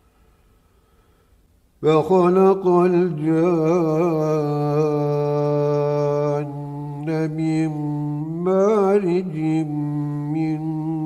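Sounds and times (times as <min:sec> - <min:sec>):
man chanting: 0:01.8 - 0:11.0.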